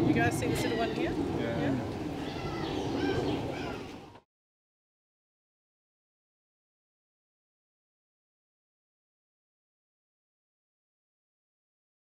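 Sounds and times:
birds chirping: 0:00.0 - 0:04.2
outdoor background noise: 0:00.0 - 0:04.3.

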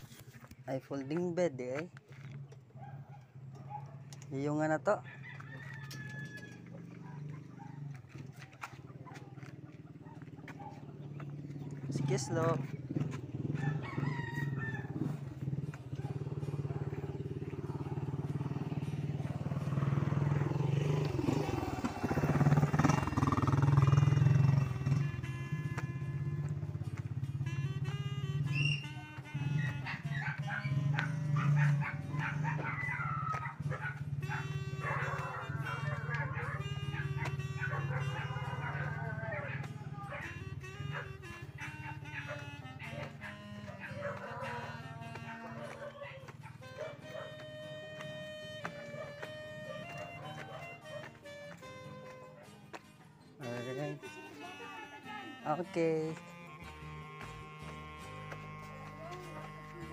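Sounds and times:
dogs barking and howling: 0:02.3 - 0:53.7, 0:58.2 - 0:59.9.

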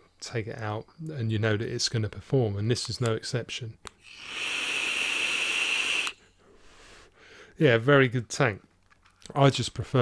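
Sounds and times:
airy hiss of vape draw: 0:04.0 - 0:06.3
faint exhale: 0:04.0 - 0:07.6.

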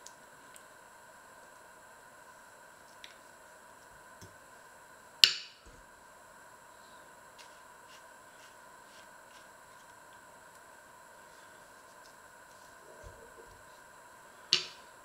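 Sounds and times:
paring knife pitting plums: 0:14.5 - 0:14.9.

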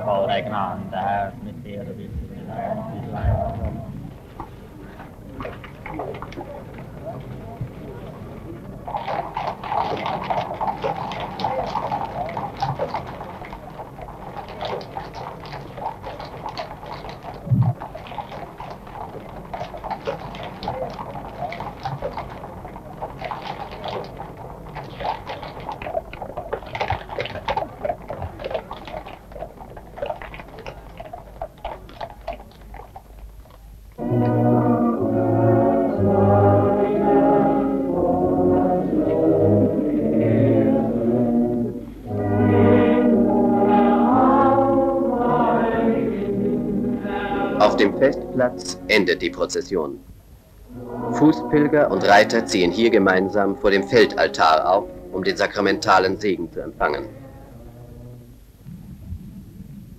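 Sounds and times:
crowd noise: 0:00.0 - 0:26.4, 0:34.0 - 0:58.4
horse hooves clopping on pavement: 0:04.1 - 0:33.7
brass band playing: 0:34.0 - 0:49.0, 0:50.6 - 0:55.9.

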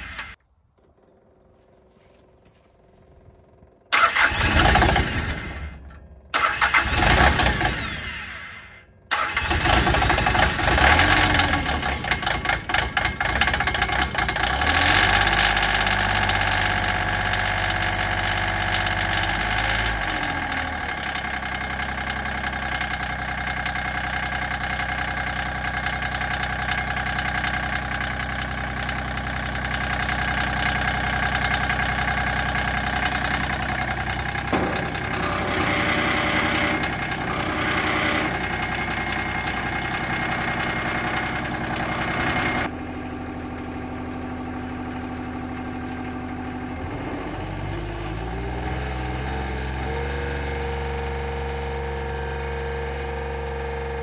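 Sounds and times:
engine starting and idling: 0:00.0 - 0:02.0, 0:03.2 - 0:46.9.

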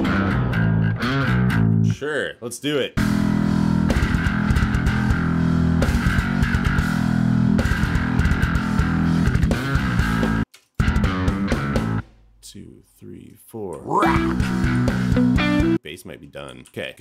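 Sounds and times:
electric bass guitar: 0:00.0 - 0:02.0, 0:03.0 - 0:12.0, 0:13.9 - 0:15.8
guitar: 0:00.0 - 0:02.0, 0:03.0 - 0:12.0, 0:13.9 - 0:15.8.

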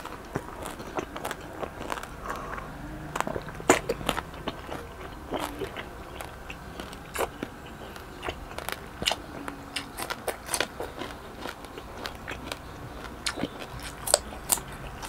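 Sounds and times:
person chewing crunchy food: 0:00.0 - 0:15.0.

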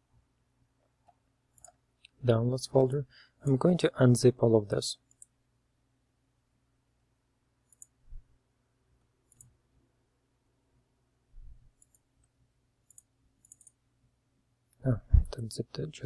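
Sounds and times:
computer mouse clicks: 0:01.0 - 0:02.2, 0:05.1 - 0:05.4, 0:07.6 - 0:08.0, 0:09.2 - 0:09.6, 0:11.7 - 0:13.8
soft low thumps: 0:15.0 - 0:15.4.

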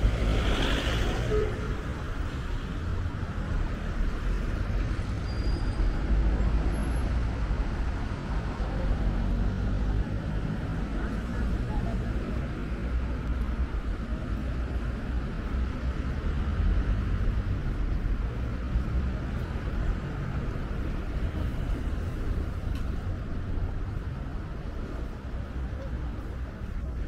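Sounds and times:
road traffic rumble: 0:00.0 - 0:27.0.

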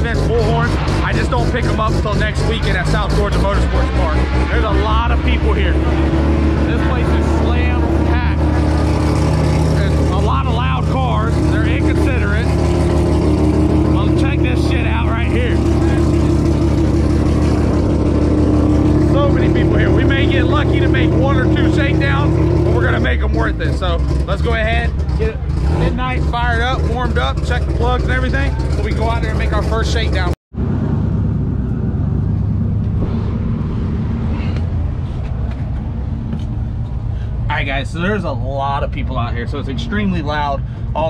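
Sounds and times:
people talking: 0:00.0 - 0:08.8, 0:09.6 - 0:12.6, 0:13.8 - 0:16.3, 0:19.0 - 0:30.4, 0:37.5 - 0:41.0
engine idling: 0:00.0 - 0:30.4, 0:31.4 - 0:41.0
low rumble: 0:00.0 - 0:41.0.

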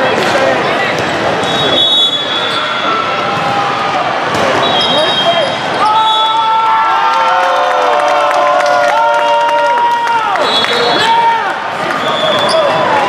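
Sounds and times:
volleyballs hit and bouncing: 0:00.0 - 0:01.8, 0:03.1 - 0:05.1
players shouting: 0:01.4 - 0:13.0.

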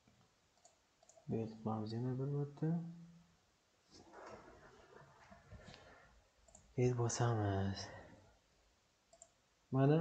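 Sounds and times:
man talking: 0:01.3 - 0:03.1, 0:06.7 - 0:08.2, 0:09.7 - 0:10.0.

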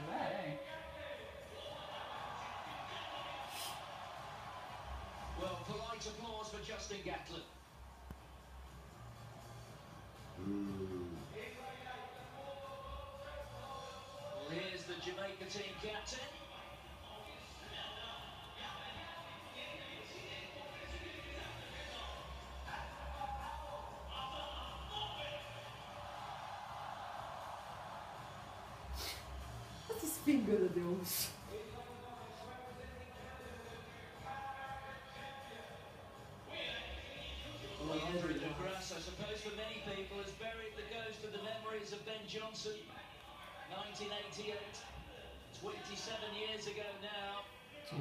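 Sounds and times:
stadium crowd on television: 0:00.0 - 0:48.0
polite applause: 0:01.2 - 0:06.4, 0:16.4 - 0:29.9.

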